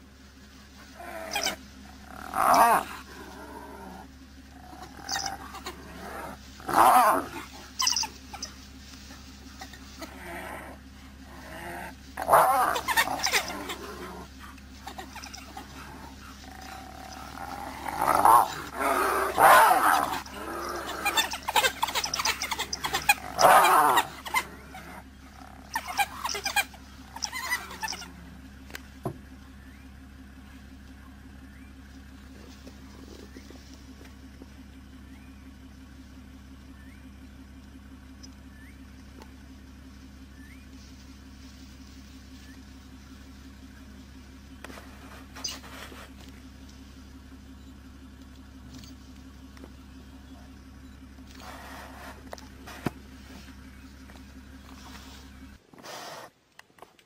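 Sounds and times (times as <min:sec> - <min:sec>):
steady low hum: 0:00.0 - 0:57.0
animals squealing and growling: 0:00.8 - 0:08.6, 0:09.4 - 0:28.4, 0:44.7 - 0:46.2, 0:51.3 - 0:56.3.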